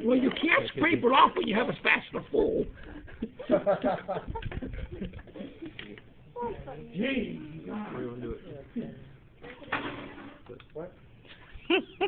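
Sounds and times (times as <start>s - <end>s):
voices in a room: 0.0s - 12.0s.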